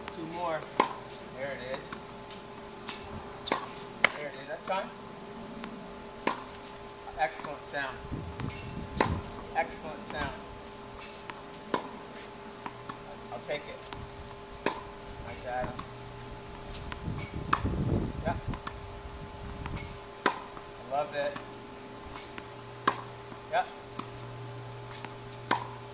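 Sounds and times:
tennis racket striking ball: 0.0 - 2.0, 2.8 - 4.8, 5.6 - 6.7, 7.3 - 10.4, 11.0 - 14.0, 14.6 - 15.0, 19.7 - 21.5, 22.1 - 24.3, 24.9 - 25.9.

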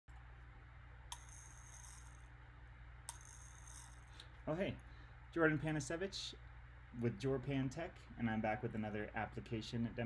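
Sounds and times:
low steady hum: 0.1 - 10.0
high jingling rattle: 1.2 - 2.3, 3.1 - 4.2.

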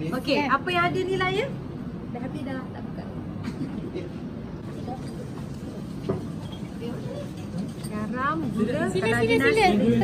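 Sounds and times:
people chattering: 4.6 - 10.0.

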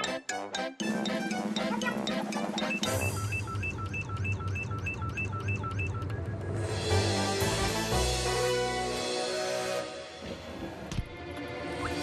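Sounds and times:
cartoon music: 0.0 - 3.6.

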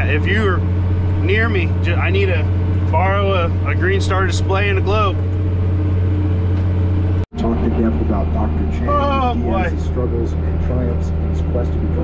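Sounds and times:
tractor engine droning: 0.0 - 12.0.

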